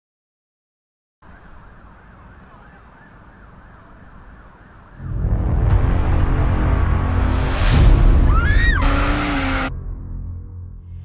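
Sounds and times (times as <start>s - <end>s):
bass-heavy beat: 7.7s - 9.8s
siren effect wailing: 8.2s - 9.7s.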